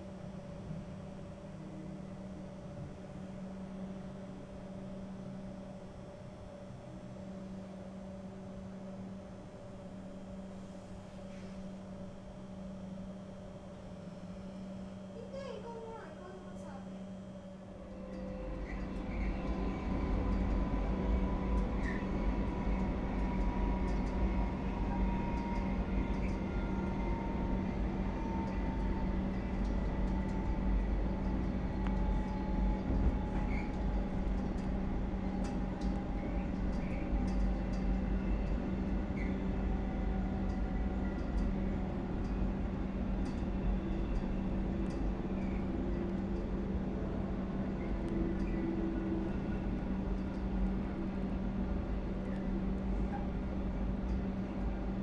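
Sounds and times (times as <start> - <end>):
train rumble and hum: 0.0 - 55.0.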